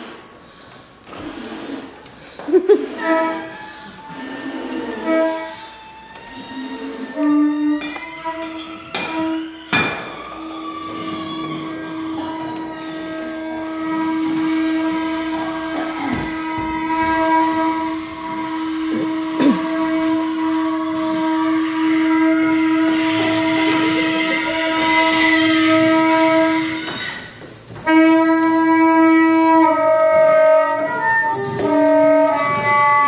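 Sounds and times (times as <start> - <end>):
hiss: 0.0 - 7.2, 15.4 - 33.0
saxophone long reedy note: 2.9 - 9.6, 10.9 - 27.0, 27.8 - 33.0.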